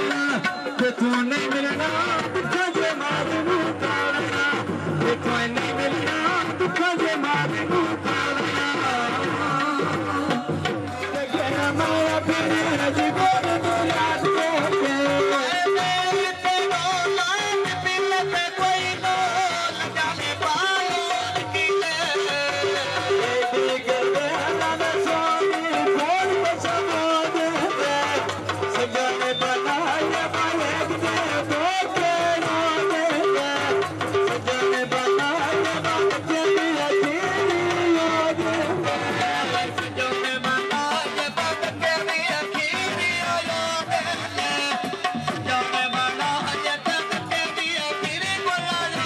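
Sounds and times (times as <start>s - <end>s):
folk music over sound system: 0.0s - 49.0s.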